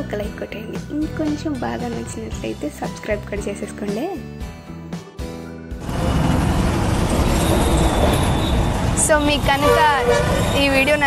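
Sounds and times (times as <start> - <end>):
road traffic going by: 5.8 - 11.0.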